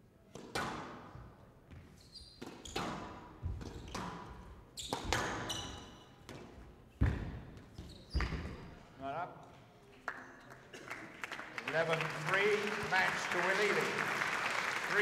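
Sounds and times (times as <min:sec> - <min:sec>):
shoes squeaking on court: 0:01.1 - 0:08.8.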